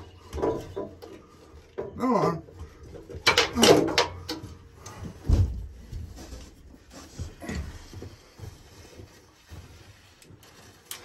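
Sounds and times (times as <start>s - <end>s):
light knocks and rustles: 2.6s - 11.0s.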